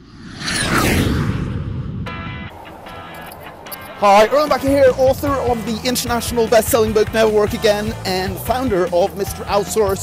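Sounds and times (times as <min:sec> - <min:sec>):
whoosh: 0:00.0 - 0:05.0
deep boom: 0:00.7 - 0:02.5.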